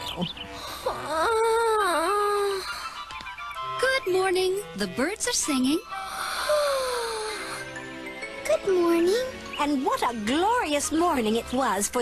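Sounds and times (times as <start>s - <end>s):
high-pitched cartoon voice sighing: 6.2s - 7.7s.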